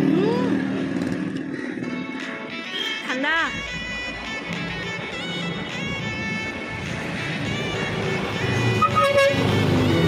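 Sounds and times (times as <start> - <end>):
road traffic: 0.0 - 10.0
background music: 1.7 - 10.0.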